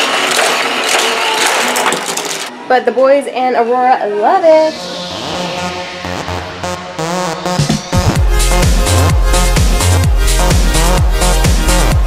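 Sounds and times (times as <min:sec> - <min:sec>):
toy cars rattling on plastic track: 0:00.0 - 0:02.5.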